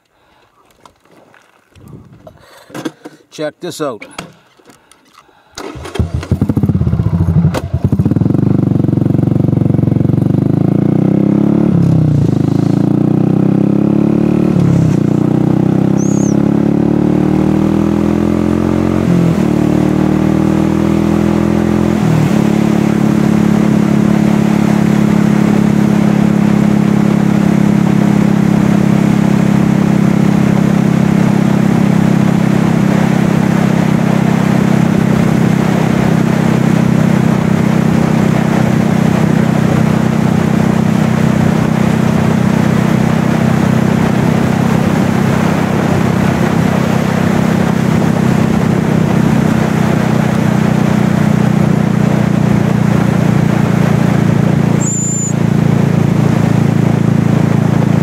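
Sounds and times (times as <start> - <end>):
motorcycle engine accelerating: 5.6 - 58.0.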